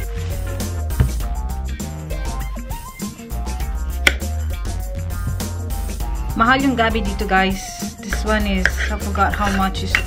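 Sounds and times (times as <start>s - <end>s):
background music with bass: 0.0s - 10.0s
knife knocking on wooden board: 0.9s - 1.4s
knife slicing root: 4.0s - 4.3s, 8.1s - 10.0s.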